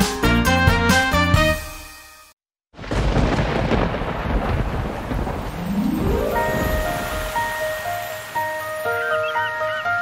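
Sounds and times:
thunder rumble: 2.8s - 8.6s
heavy rain: 2.8s - 10.0s
rising run of notes into music: 5.7s - 10.0s.

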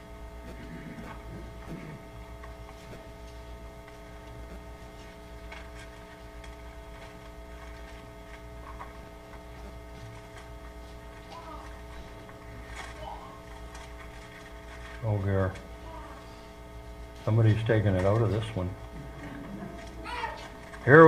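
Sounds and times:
steady electrical hum: 0.0s - 21.0s
book pages being leafed through: 0.4s - 16.2s, 16.8s - 21.0s.

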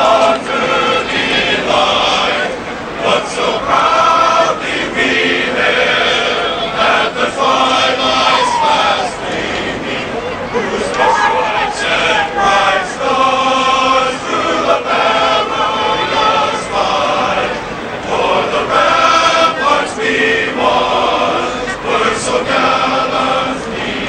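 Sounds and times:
choir singing: 0.0s - 24.0s.

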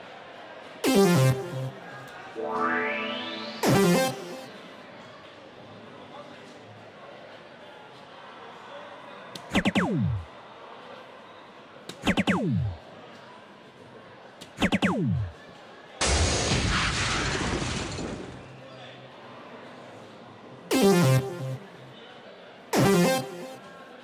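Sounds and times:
falling electronic swoops: 0.9s - 4.8s, 9.5s - 10.3s, 12.0s - 12.8s, 14.6s - 15.3s
crashing noisy award effect: 2.4s - 4.8s.

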